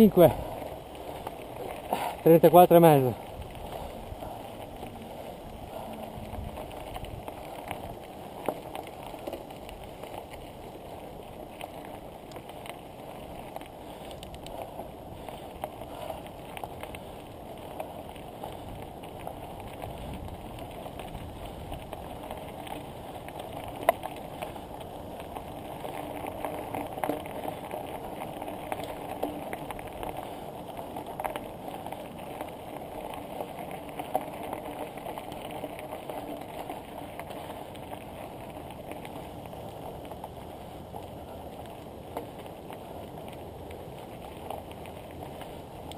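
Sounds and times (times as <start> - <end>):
bicycle tyres crunching on gravel: 0.0 - 45.9.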